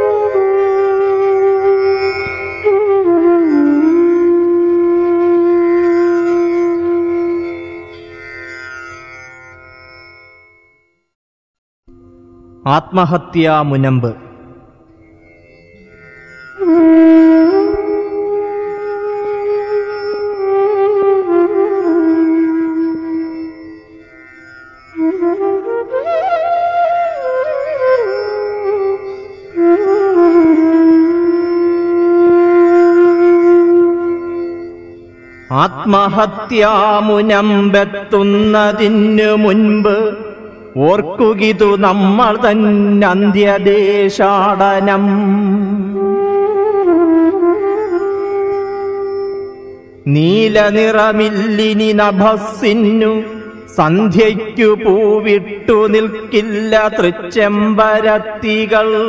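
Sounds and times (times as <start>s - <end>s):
wind instrument holding long note: 0.0s - 8.0s, 16.6s - 24.1s, 25.0s - 35.8s, 45.6s - 50.1s.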